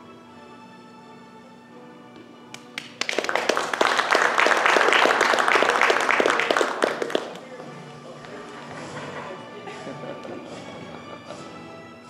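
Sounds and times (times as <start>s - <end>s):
soft background music: 0.0s - 12.0s
small group applauding: 2.5s - 7.6s.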